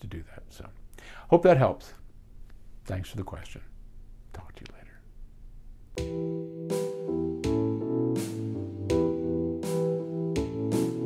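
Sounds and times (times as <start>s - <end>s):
music: 6.0s - 11.0s.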